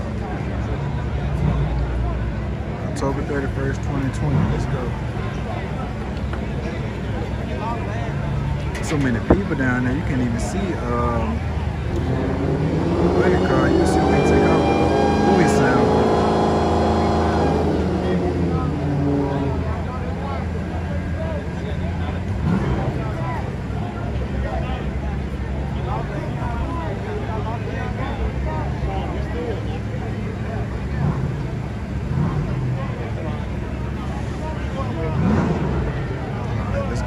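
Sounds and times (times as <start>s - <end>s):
crowd chatter: 0.0s - 37.0s
race engines idling: 0.0s - 37.0s
engine revving: 8.8s - 20.7s, 22.0s - 24.0s, 30.0s - 37.0s.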